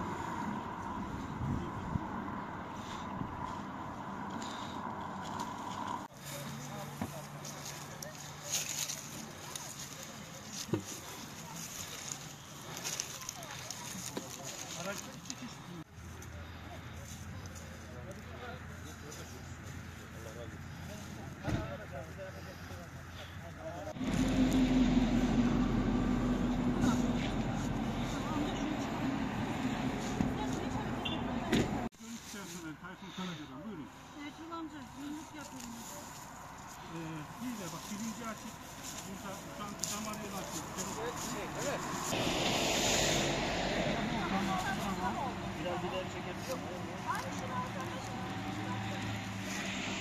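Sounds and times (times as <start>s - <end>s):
road traffic: 0.0s - 50.0s.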